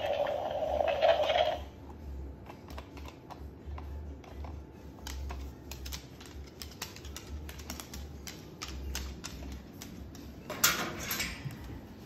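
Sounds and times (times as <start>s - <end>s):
claws clicking on wooden floor: 2.5s - 10.5s.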